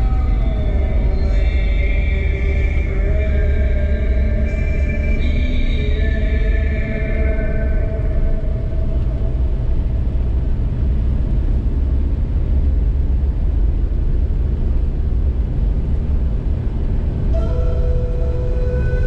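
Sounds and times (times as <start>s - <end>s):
music: 0.0s - 9.8s, 17.3s - 19.0s
car engine and tyres rumbling: 0.0s - 19.0s.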